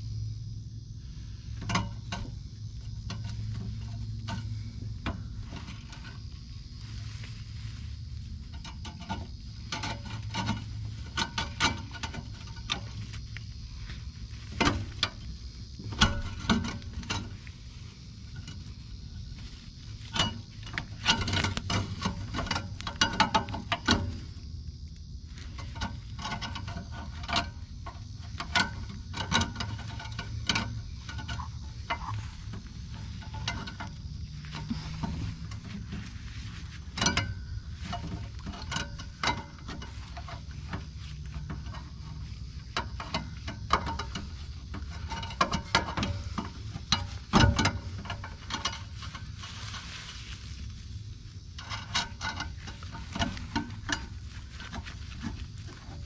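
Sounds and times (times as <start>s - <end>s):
low steady hum: 0.0s - 56.0s
wire scraping against metal: 1.0s - 56.0s.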